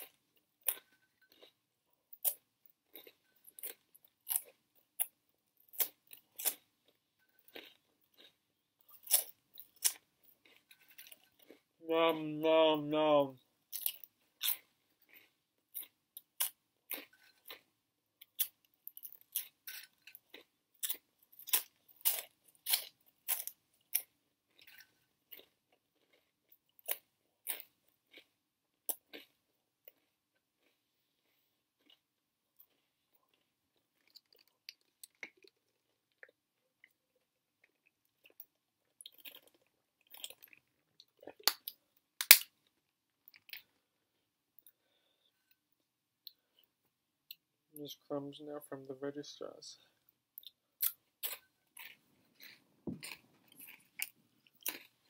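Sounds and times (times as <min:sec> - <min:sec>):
crunchy snack being chewed: 0:00.0 - 0:11.8, 0:13.7 - 0:45.2, 0:50.0 - 0:55.0.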